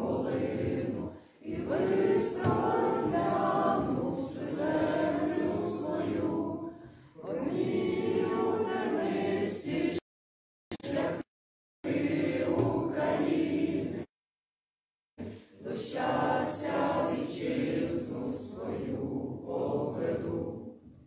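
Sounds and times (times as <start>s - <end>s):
group singing unaccompanied: 0.0s - 10.0s, 10.7s - 14.1s, 15.2s - 20.9s
singers breathing: 1.1s - 1.5s, 6.7s - 7.2s, 15.2s - 15.6s.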